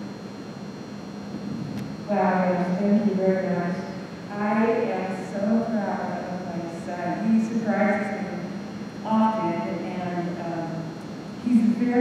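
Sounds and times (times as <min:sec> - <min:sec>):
high whine: 0:00.0 - 0:12.0
microphone hiss: 0:00.0 - 0:12.0.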